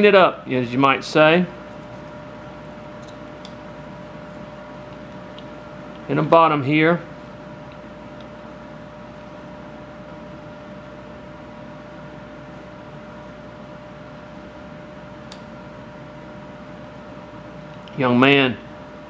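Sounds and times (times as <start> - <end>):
room hum and hiss: 0.0 - 19.0.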